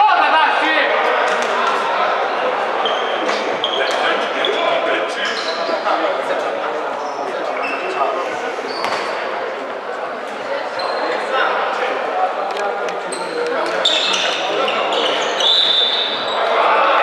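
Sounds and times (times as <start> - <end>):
players' voices echoing: 0.0 - 17.0
shoe squeaks: 2.8 - 5.9, 7.0 - 9.2, 10.7 - 11.3, 13.0 - 16.6.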